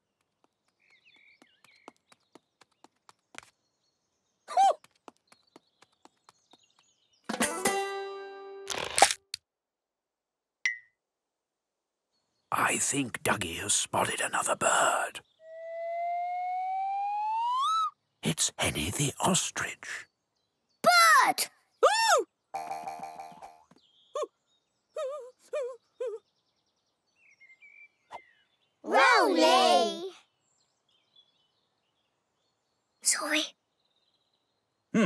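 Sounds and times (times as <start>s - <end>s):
birds chirping: 0.0s - 7.3s, 12.0s - 35.0s
cartoon whistle sliding upward: 15.5s - 17.9s.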